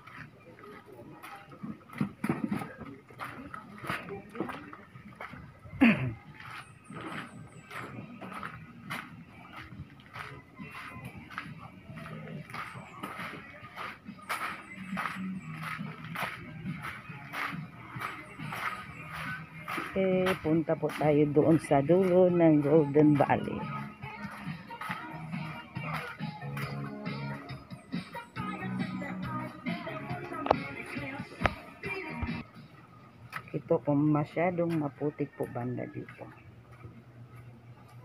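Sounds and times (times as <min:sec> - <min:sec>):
footsteps on muddy path: 0:00.0 - 0:26.8
faint voices: 0:00.0 - 0:27.5.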